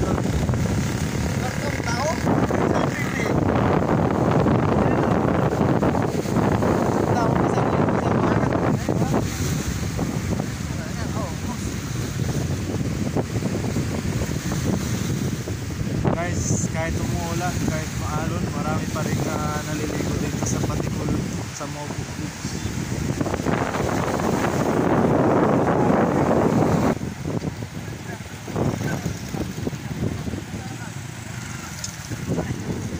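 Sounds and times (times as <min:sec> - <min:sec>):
waves washing against seawall: 0:00.0 - 0:32.9
wind buffeting microphone: 0:00.0 - 0:32.9.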